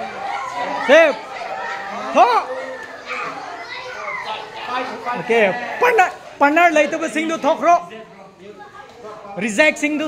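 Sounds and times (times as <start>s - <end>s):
children chattering and calling: 0.0s - 10.0s
child shouting: 0.2s - 4.7s.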